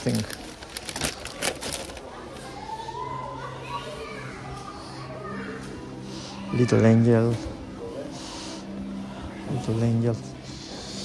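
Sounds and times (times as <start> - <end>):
plastic wrapping crinkling: 0.0 - 2.3
faint distant voices: 0.0 - 11.0
low hum of supermarket: 0.0 - 11.0.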